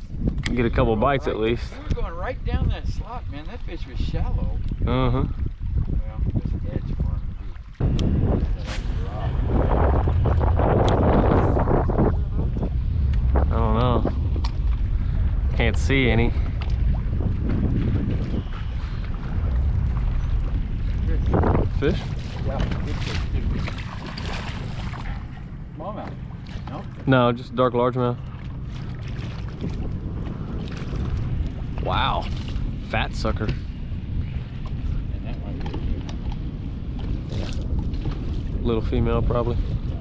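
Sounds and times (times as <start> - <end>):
wind buffeting microphone: 0.0 - 40.0.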